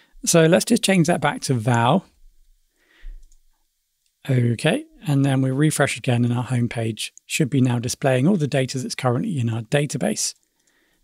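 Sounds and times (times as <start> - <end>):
computer keys and mouse clicking: 3.2 - 3.4.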